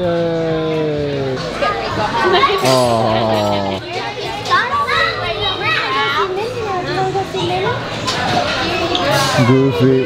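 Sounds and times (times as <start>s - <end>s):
adults talking: 0.0s - 10.0s
children's high-pitched voices: 4.1s - 7.8s.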